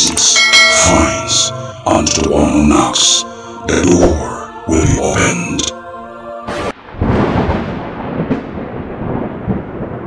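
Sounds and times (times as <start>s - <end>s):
thunder rumbling: 6.5s - 10.0s.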